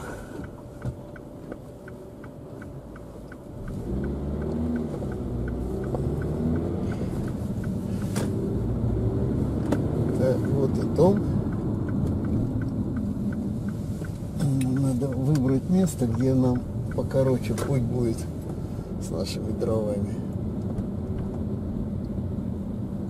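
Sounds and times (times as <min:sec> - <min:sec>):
car engine and road noise: 0:00.0 - 0:23.0
faint regular ticking: 0:00.4 - 0:20.1.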